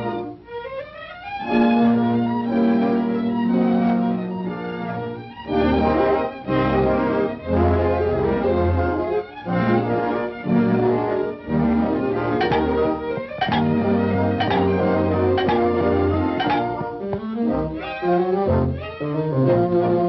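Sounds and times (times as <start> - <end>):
orchestral bowed strings: 9.8 - 20.0
sharp orchestral accents: 12.3 - 16.9.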